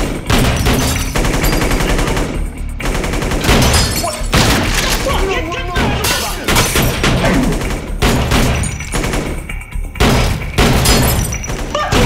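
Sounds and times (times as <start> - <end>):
rapid gunfire: 0.0 - 12.0.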